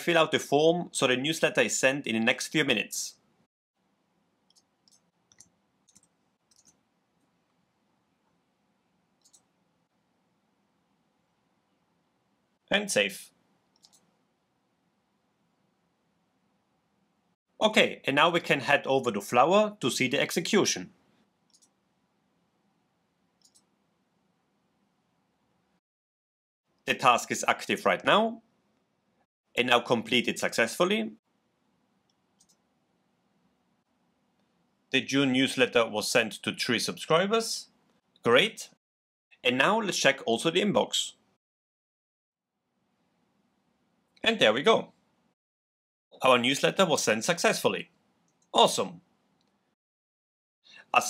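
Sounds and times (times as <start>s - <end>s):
computer keyboard keystrokes: 4.5s - 6.8s
computer mouse clicks: 4.5s - 7.3s, 9.2s - 9.6s, 13.7s - 14.2s, 21.5s - 21.8s, 23.4s - 23.8s, 32.0s - 32.6s.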